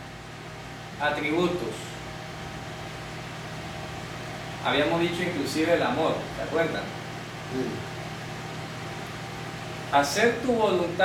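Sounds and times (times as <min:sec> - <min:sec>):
room noise hum and hiss: 0:00.0 - 0:11.0
faint murmur of voice: 0:07.5 - 0:07.8.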